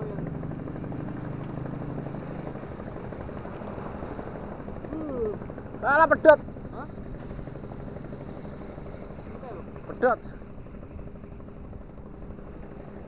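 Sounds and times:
low engine drone: 0:00.0 - 0:13.0
man exclaiming: 0:04.9 - 0:06.9.

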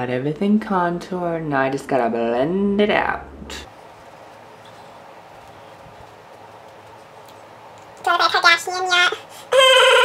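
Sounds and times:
room hiss: 0:01.5 - 0:09.6.

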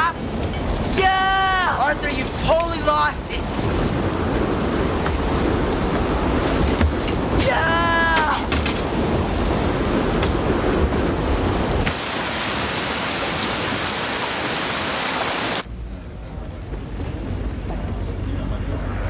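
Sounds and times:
low rumbling thunder: 0:00.0 - 0:14.2, 0:15.6 - 0:19.0
heavy rain: 0:00.0 - 0:19.0.

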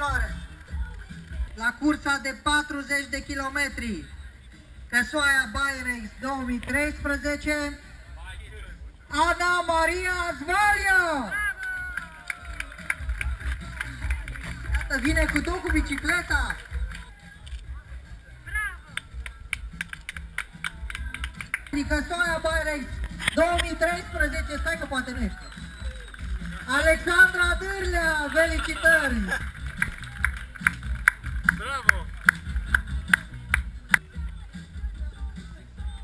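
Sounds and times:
music with pulsing beat: 0:11.8 - 0:36.0
audience clapping: 0:11.9 - 0:17.2, 0:18.9 - 0:21.9, 0:23.0 - 0:34.1.

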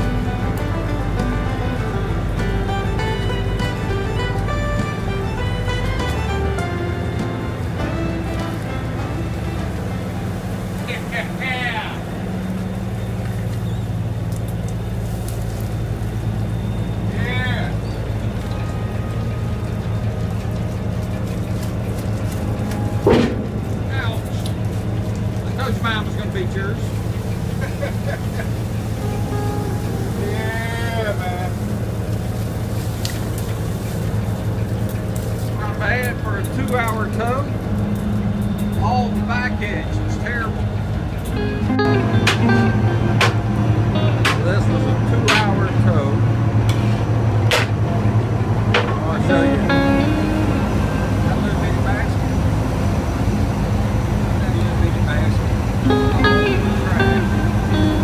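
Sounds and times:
music: 0:00.0 - 0:12.4, 0:16.5 - 0:26.4, 0:28.8 - 0:47.8, 0:48.7 - 0:53.1, 0:54.4 - 0:58.0
boat engine droning: 0:00.0 - 0:58.0
voices: 0:08.3 - 0:46.5, 0:47.5 - 0:58.0
sharp knocks and clicks: 0:42.2 - 0:42.6, 0:43.2 - 0:43.4, 0:44.2 - 0:44.6, 0:47.5 - 0:47.8, 0:48.7 - 0:49.0.

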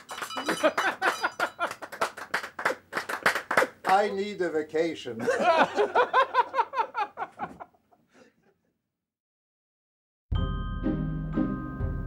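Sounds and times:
man laughing: 0:05.2 - 0:08.6.

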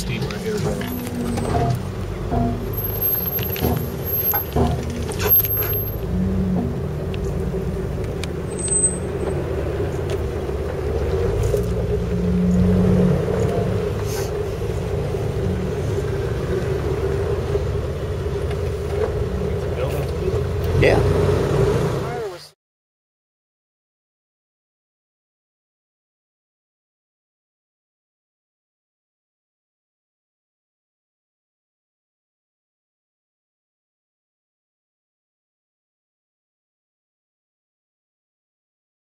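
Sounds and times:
sharp knocks and rattles: 0:00.0 - 0:20.8
vehicle engine running at low speed: 0:00.0 - 0:22.4.

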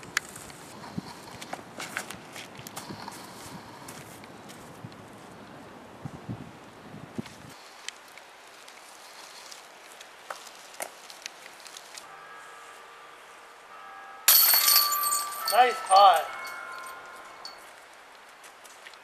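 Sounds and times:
disc hitting basket chains: 0:14.3 - 0:17.6.

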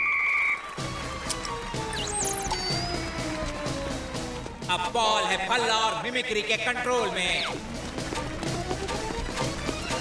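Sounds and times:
background music with a beat: 0:00.7 - 0:10.0.

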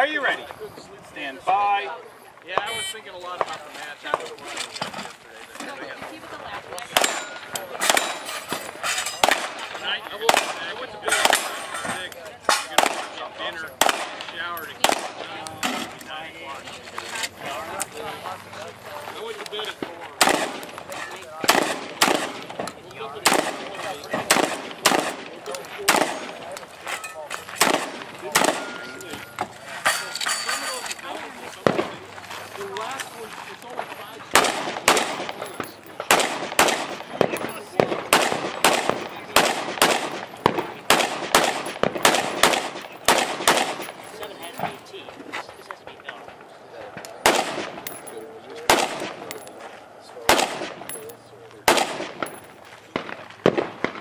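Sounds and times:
gunshots: 0:06.9 - 0:08.4, 0:09.2 - 0:11.6, 0:12.5 - 0:15.8, 0:20.2 - 0:26.6, 0:27.6 - 0:29.2, 0:31.6 - 0:32.1, 0:34.3 - 0:44.8, 0:47.2 - 0:48.1, 0:48.7 - 0:49.4, 0:50.2 - 0:54.0.

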